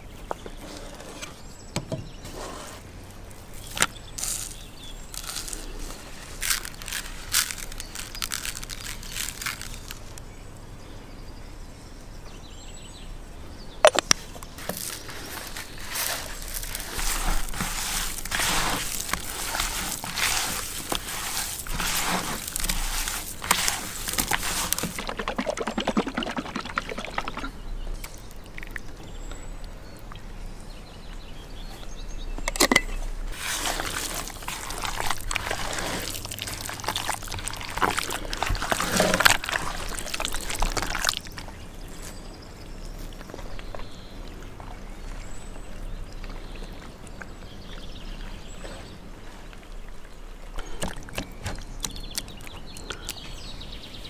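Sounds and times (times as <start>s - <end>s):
hands squishing raw meat: 3.6s - 10.2s, 14.5s - 29.0s, 33.3s - 42.2s.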